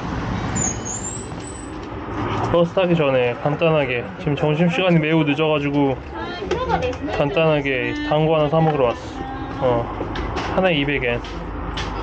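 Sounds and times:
passing vehicles rumbling: 0.0s - 12.0s
thin high squeal: 0.6s - 1.7s.

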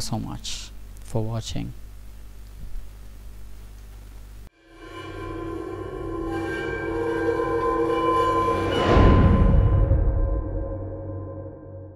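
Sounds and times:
cinematic riser chord: 4.5s - 11.9s.

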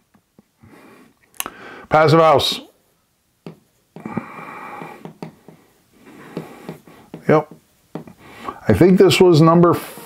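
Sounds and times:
breathy nasal sound: 4.0s - 7.2s
light taps: 4.8s - 5.7s, 6.3s - 8.2s.

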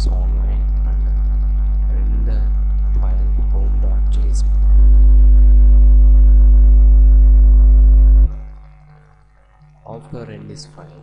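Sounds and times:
loud low-pitched drone: 0.0s - 8.7s.

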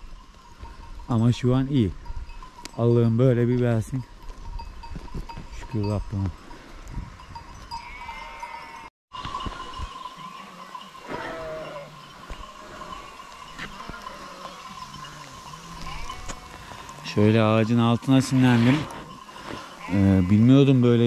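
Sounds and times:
sheep bells clinking: 0.0s - 21.0s
sheep bleating: 7.7s - 8.9s, 10.2s - 17.2s, 19.3s - 21.0s
falling rain hiss: 9.6s - 21.0s.

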